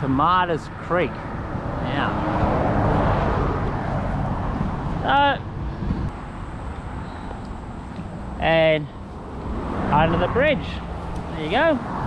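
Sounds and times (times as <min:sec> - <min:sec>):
road traffic rushing past: 0:00.0 - 0:12.0.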